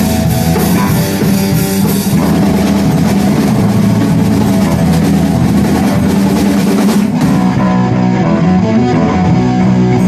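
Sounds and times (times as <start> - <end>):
distorted electric guitar: 0.0 - 10.0
drum kit: 0.0 - 10.0.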